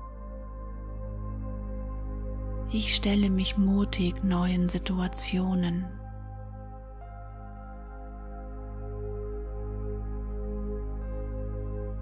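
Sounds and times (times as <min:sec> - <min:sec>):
calm ambient music: 0:00.0 - 0:12.0.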